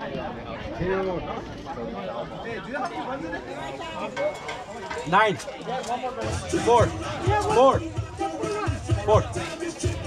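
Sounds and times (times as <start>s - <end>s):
indistinct voices talking: 1.5s - 10.0s.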